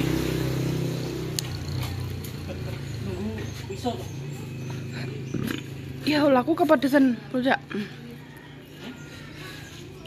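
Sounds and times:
small engine humming: 0.0 - 10.0.

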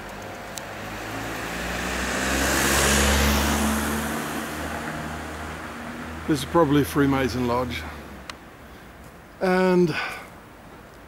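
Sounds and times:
car passing by: 0.6 - 8.3.

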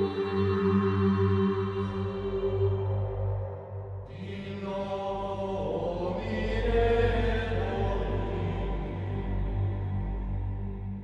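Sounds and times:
ambient music with low drones: 0.0 - 11.0
chant-like voices: 0.0 - 11.0.

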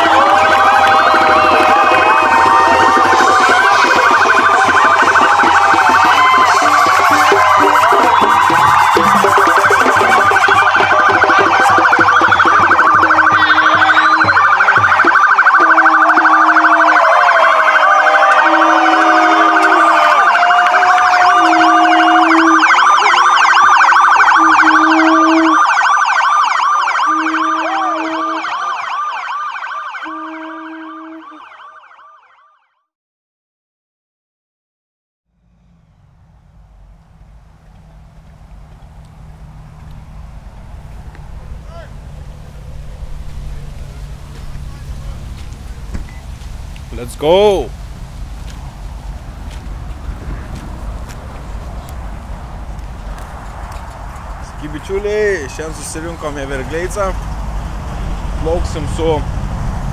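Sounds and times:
police sirens wailing: 0.0 - 32.4, 37.2 - 59.3.

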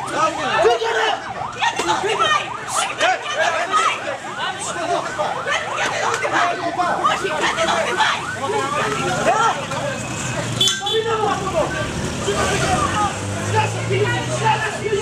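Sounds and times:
crowd shouting: 0.0 - 15.0.

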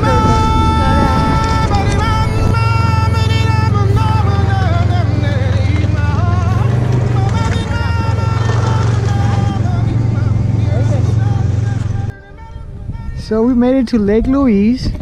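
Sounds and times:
snowmobile engine droning: 0.0 - 12.8
pop song with singing: 0.0 - 15.0.

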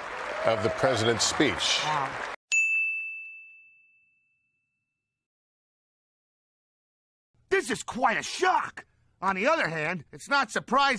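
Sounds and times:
applause: 0.0 - 2.4
bright bell-like ding: 2.5 - 4.8.

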